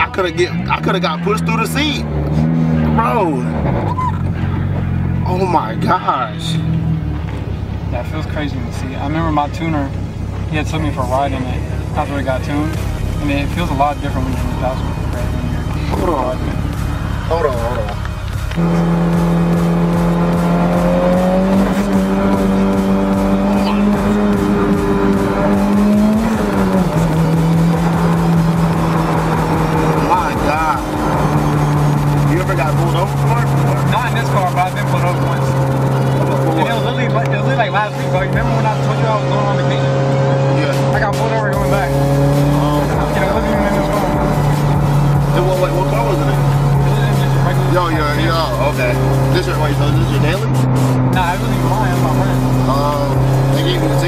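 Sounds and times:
car engine drone while driving: 0.0s - 54.0s.

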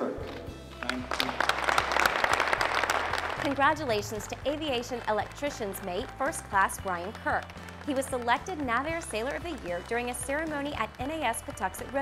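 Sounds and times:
background music: 0.0s - 12.0s
audience applause: 0.8s - 12.0s.

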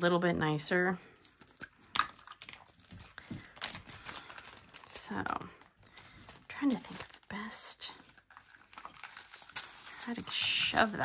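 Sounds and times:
plastic rustling: 0.0s - 11.0s.

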